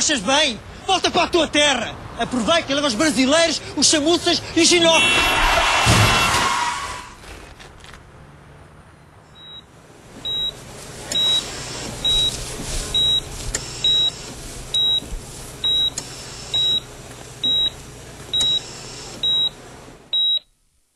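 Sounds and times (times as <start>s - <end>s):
patient monitor beeping: 9.4s - 20.5s.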